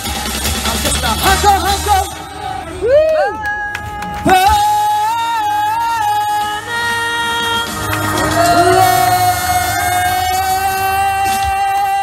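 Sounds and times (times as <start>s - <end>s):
backing music: 0.0s - 12.0s.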